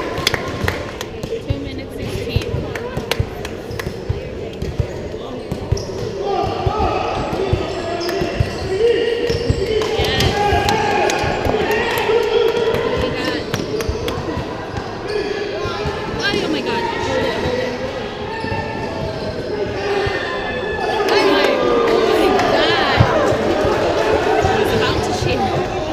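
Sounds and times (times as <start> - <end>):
basketball bouncing on court: 0.1 - 11.7
people calling out: 6.2 - 25.9.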